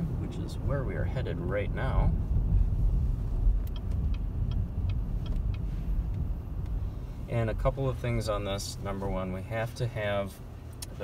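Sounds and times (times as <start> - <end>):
car cabin road rumble: 0.0 - 11.0
faint light ticks: 3.5 - 6.8, 10.7 - 11.0.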